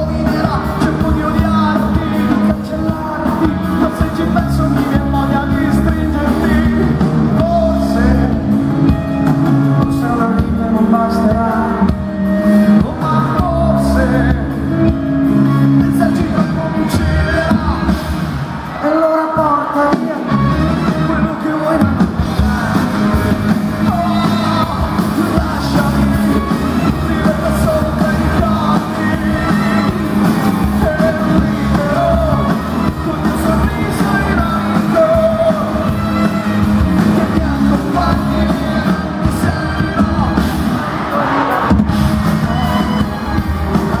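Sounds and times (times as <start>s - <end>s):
man singing into microphone: 0.0s - 8.6s, 9.7s - 18.1s, 18.7s - 41.7s
pop-rock band playing loudly: 0.0s - 44.0s.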